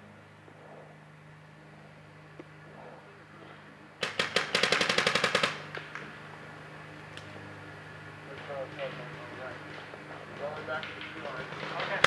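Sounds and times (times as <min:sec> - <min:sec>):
paintball marker rapid shots: 0:04.0 - 0:06.0.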